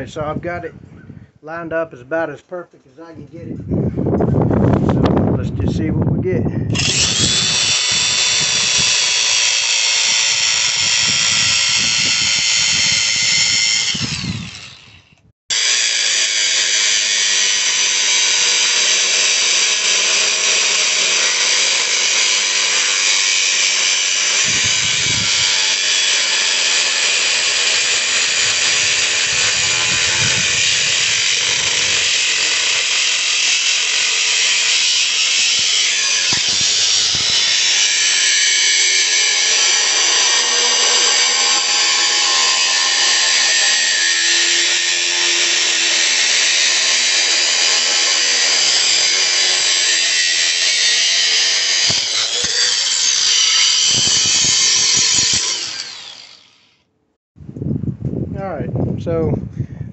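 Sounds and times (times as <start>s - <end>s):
angle grinder cutting steel: 6.7s - 56.8s.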